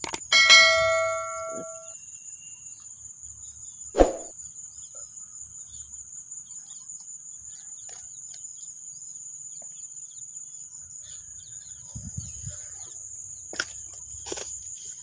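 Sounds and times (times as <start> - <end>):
high insect drone: 0.0 - 15.0
bell-like chime: 0.3 - 2.0.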